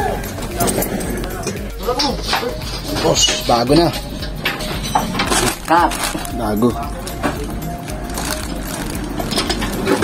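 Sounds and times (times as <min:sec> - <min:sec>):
plastic bag crinkling: 0:05.3 - 0:10.0.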